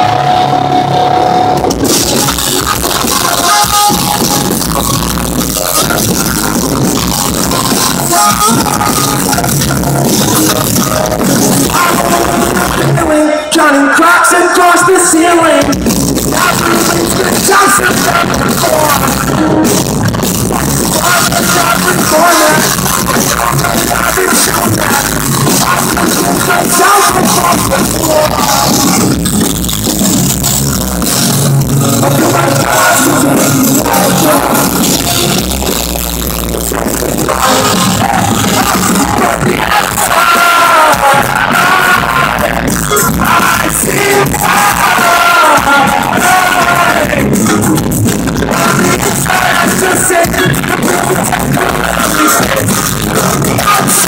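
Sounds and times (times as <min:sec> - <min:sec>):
person singing lead vocal: 0:00.0 - 0:29.3, 0:31.8 - 0:54.0
live pop-punk band playing: 0:00.0 - 0:54.0.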